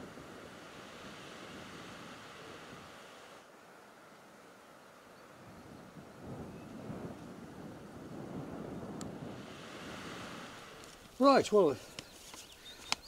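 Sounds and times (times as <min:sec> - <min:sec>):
wind noise on microphone: 0:00.0 - 0:03.3, 0:05.3 - 0:11.1.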